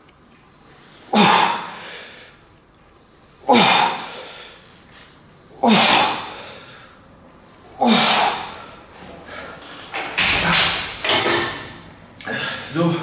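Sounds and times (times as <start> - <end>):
dumbbells thudding down: 10.0 - 11.8.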